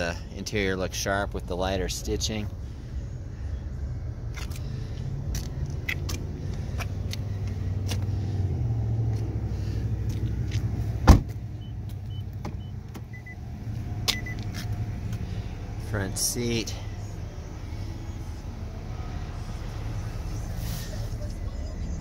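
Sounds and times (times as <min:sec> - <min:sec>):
steady low rumble: 0:00.0 - 0:22.0
car door shutting thud: 0:11.0 - 0:11.4.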